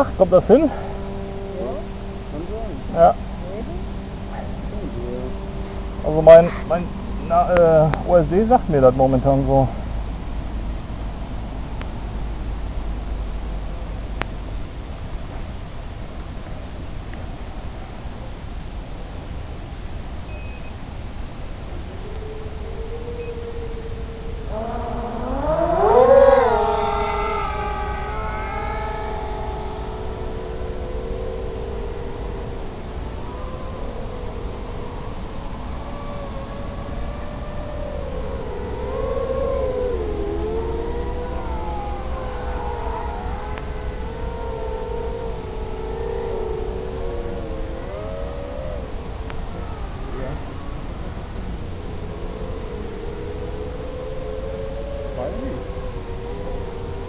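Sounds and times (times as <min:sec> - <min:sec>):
quadcopter motors whining: 0:00.0 - 0:09.6, 0:22.0 - 0:57.0
constant hiss: 0:00.0 - 0:57.0.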